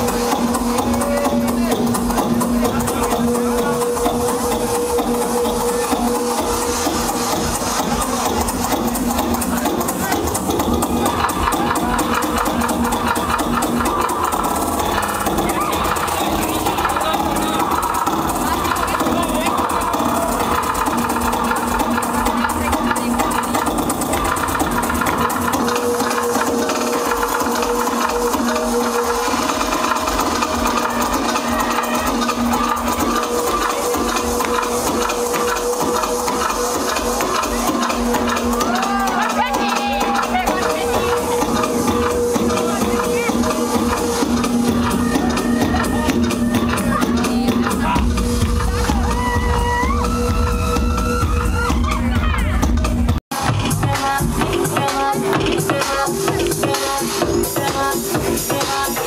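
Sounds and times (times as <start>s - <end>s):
electronic dance music: 0.0s - 59.0s.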